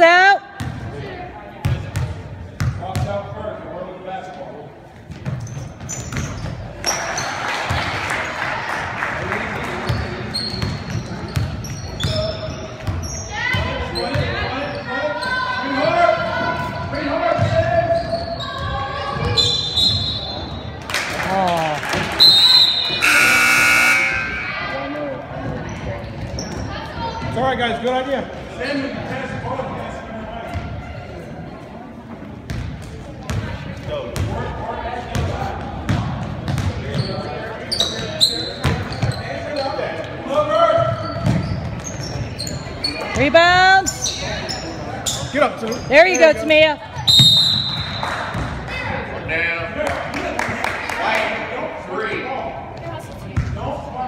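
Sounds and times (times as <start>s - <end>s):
whistle blast: 22.2s - 24.6s, 47.1s - 48.0s
gym buzzer: 22.4s - 24.6s
basketball bouncing on wooden floor: 35.9s - 36.7s.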